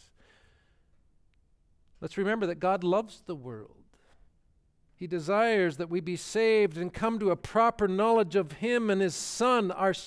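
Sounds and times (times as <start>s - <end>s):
soft intake of breath: 0.0s - 0.9s.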